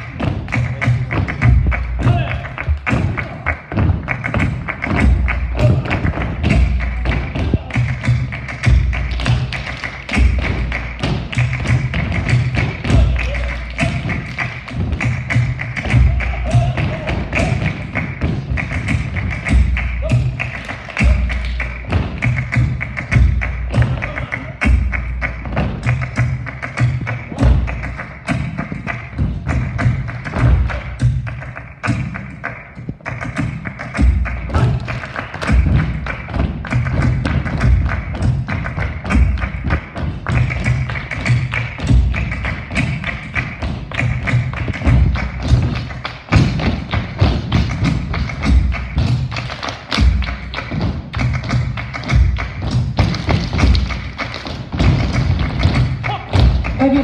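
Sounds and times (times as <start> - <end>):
flamenco dance music: 0.0 - 57.0
handclaps: 0.0 - 57.0.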